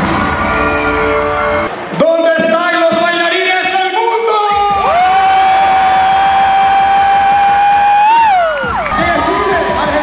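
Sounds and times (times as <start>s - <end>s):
crowd cheering and whooping: 0.0s - 1.7s, 4.6s - 10.0s.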